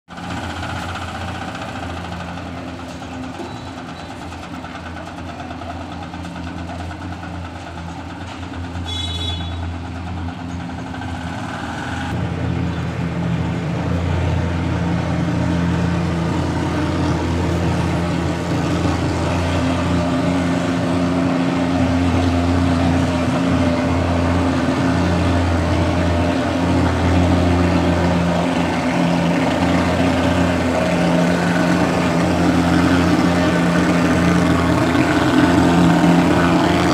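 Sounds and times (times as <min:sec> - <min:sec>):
fogging machine engine drone: 0:00.1 - 0:36.9.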